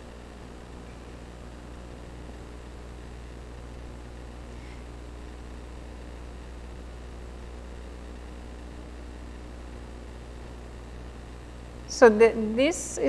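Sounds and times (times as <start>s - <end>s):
background hiss: 0.0s - 13.0s
electrical mains hum: 0.0s - 13.0s.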